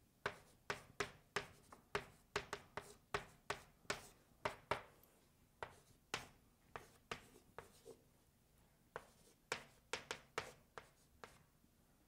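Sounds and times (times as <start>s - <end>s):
chalk writing on a chalkboard: 0.2s - 4.9s, 5.6s - 8.0s, 8.9s - 11.5s.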